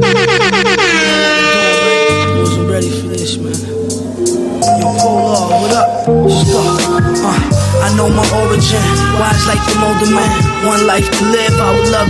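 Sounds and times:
air horn blasts: 0.0s - 3.2s, 7.9s - 12.0s
music: 0.0s - 12.0s.

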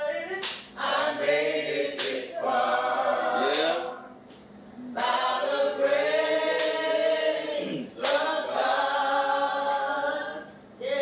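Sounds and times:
voices singing together: 0.0s - 4.2s, 4.8s - 11.0s.

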